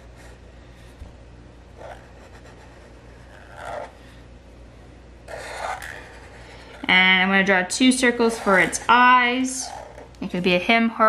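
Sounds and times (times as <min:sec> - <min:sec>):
marker drawing on paper: 0:01.8 - 0:04.0, 0:05.3 - 0:07.1, 0:08.0 - 0:10.1.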